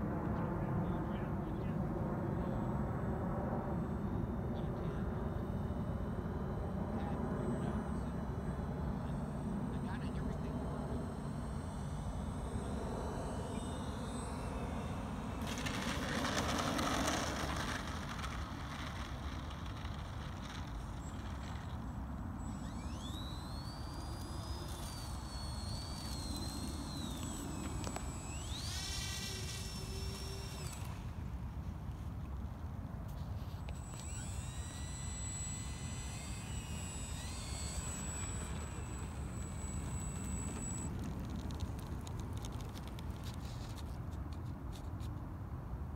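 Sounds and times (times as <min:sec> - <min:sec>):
model plane motors whining: 0:01.3 - 0:45.2.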